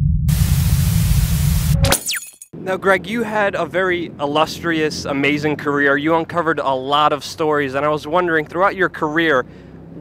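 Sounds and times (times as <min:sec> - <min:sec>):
deep rumbling bass: 0:00.0 - 0:01.9
static hiss: 0:00.3 - 0:01.8.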